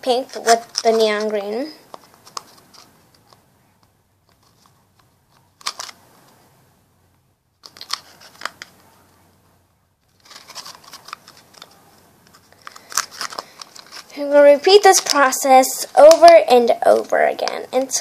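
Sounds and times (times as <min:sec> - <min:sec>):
plastic bottle crinkling: 0:00.1 - 0:03.4, 0:04.3 - 0:06.0, 0:07.6 - 0:08.8, 0:10.1 - 0:14.2, 0:14.8 - 0:16.4.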